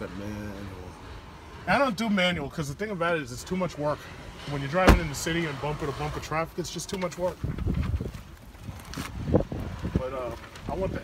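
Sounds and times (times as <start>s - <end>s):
wind buffeting microphone: 7.4s - 11.0s.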